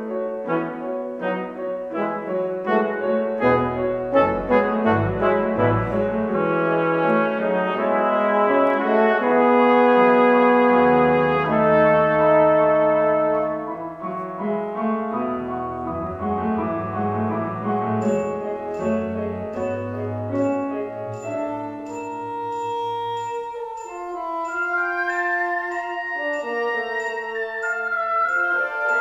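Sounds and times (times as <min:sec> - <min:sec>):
piano: 0:00.0 - 0:29.0
brass playing opera music: 0:00.4 - 0:14.3, 0:21.5 - 0:29.0.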